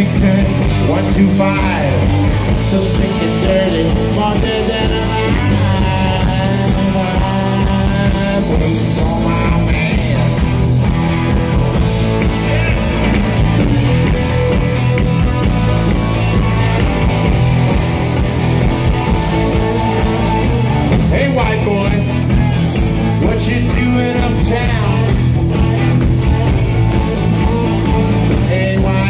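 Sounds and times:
drums: 0:00.0 - 0:29.0
electric bass: 0:00.0 - 0:29.0
electric guitar: 0:00.0 - 0:29.0.

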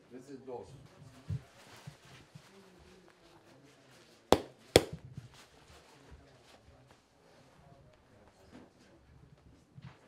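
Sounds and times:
boxing glove smacks: 0:04.4 - 0:05.0
glove rustling and thumping: 0:04.4 - 0:05.0.

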